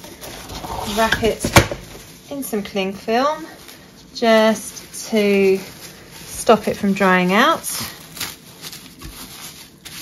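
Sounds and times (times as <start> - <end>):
cling film crinkling: 1.8 - 10.0.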